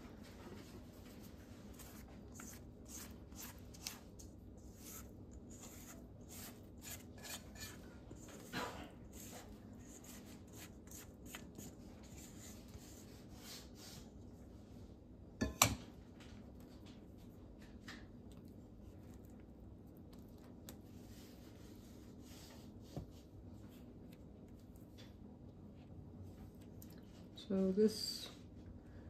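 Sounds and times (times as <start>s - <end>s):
spatula scraping batter from bowl: 1.8s - 13.7s.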